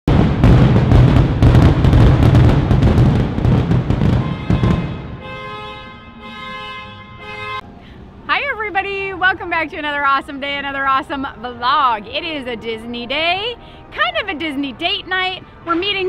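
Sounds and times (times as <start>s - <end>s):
fireworks bursting and crackling: 0.1s - 5.2s.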